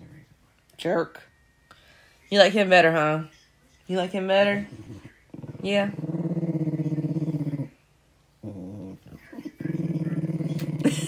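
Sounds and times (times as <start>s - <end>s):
small dog growling: 4.7s - 7.8s, 8.4s - 11.0s.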